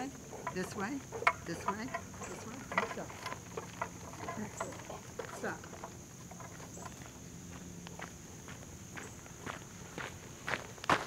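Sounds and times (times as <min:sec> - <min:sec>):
footsteps on gravel: 0:02.4 - 0:11.0.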